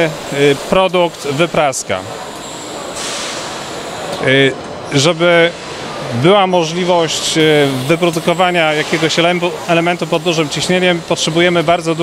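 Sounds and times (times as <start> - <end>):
machinery running: 0.0 - 12.0
hiss: 3.0 - 3.6.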